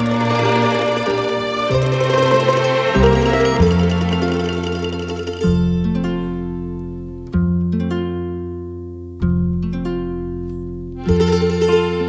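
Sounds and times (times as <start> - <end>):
plucked string chords ringing: 0.0 - 12.0.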